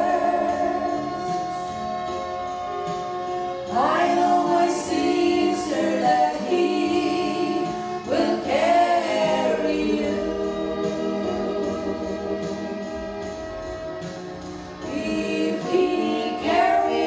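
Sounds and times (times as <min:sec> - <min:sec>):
women singing gospel in harmony: 0:00.0 - 0:02.1, 0:03.7 - 0:13.3, 0:14.8 - 0:17.0
held accompaniment chords: 0:00.0 - 0:17.0.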